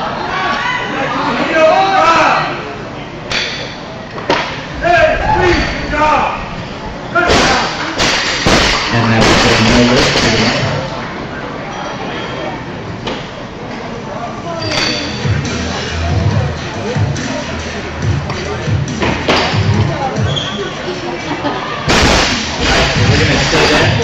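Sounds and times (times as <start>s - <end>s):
spectators shouting and cheering: 4.6s - 7.9s.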